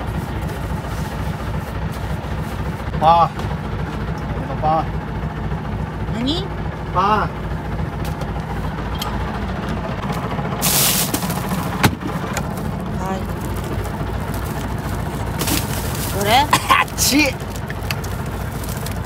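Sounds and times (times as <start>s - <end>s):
boat engine idling: 0.0s - 19.0s.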